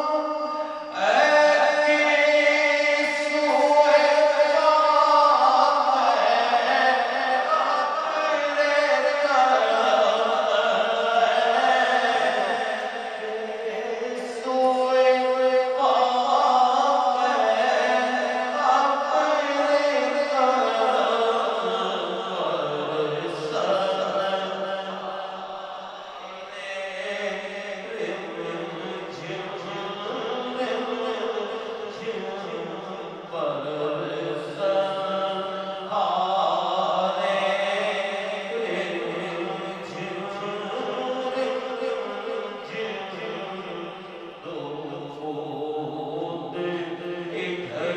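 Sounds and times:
man chanting devotional poem: 0:00.0 - 0:47.9.

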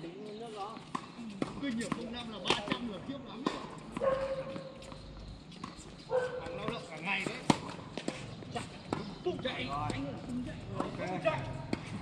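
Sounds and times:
voices across court: 0:00.0 - 0:12.0
tennis balls struck by rackets: 0:00.7 - 0:12.0.

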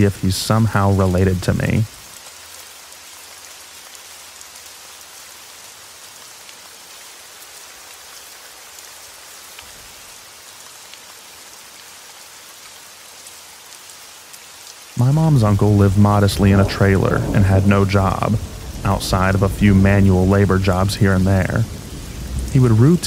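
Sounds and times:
light rain falling: 0:00.0 - 0:23.0.

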